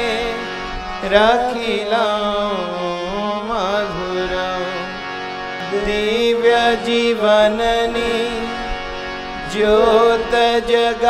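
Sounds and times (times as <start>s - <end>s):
man singing devotional hymn: 0.0s - 11.0s.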